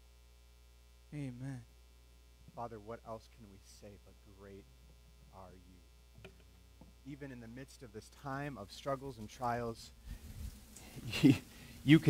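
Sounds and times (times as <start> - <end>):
electrical mains hum: 0.0 - 12.0
faint spoken words: 1.2 - 1.7.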